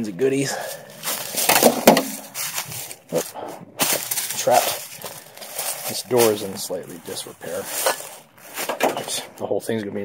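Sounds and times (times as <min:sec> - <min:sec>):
footsteps crunching through dry leaves: 0:00.3 - 0:09.3.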